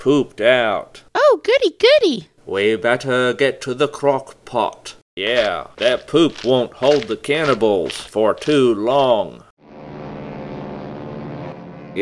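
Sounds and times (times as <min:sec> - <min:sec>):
propeller airplane engine hum: 0:09.6 - 0:12.0.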